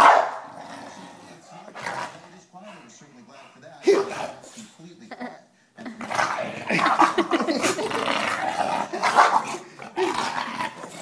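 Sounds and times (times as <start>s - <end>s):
dog growling and barking: 0.0s - 2.2s, 3.9s - 4.6s, 5.8s - 11.0s.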